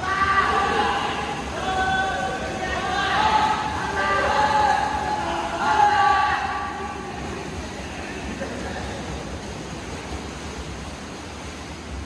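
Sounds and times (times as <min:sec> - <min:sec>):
people cheering: 0:00.0 - 0:06.9
swimmers splashing: 0:00.0 - 0:12.0.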